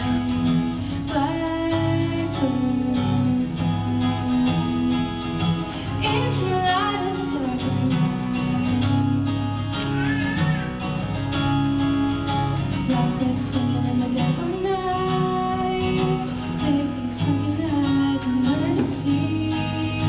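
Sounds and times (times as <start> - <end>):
acoustic guitar strumming: 0.0 - 20.0
girl singing: 1.0 - 4.9, 5.9 - 8.6, 12.8 - 20.0.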